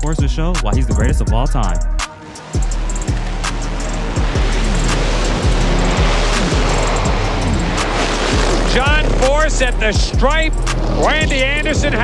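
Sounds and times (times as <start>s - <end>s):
background music with drum beat: 0.0s - 12.0s
drag racing engines roaring: 1.7s - 12.0s.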